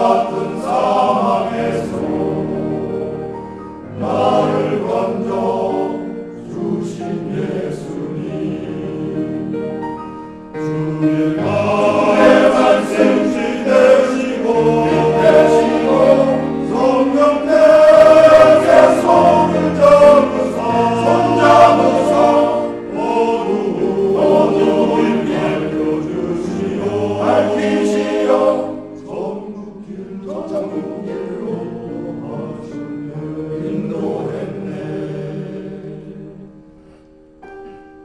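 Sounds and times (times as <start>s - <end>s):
men's choir singing in harmony: 0.0s - 37.6s.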